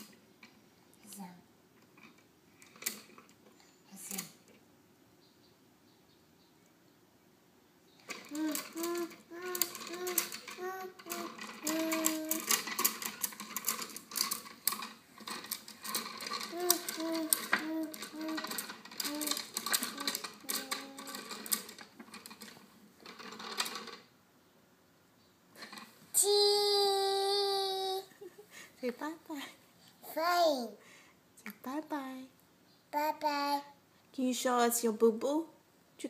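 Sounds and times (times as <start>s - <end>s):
wooden abacus beads clacking: 2.0s - 3.4s, 8.0s - 24.1s
toddler singing syllables: 8.3s - 12.6s, 16.5s - 21.2s, 26.2s - 28.1s, 33.0s - 33.7s.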